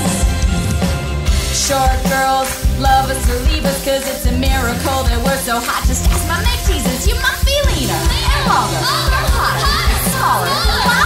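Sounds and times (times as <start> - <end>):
indie pop backing track: 0.0 - 11.0
voices chattering and calling out: 7.1 - 11.0.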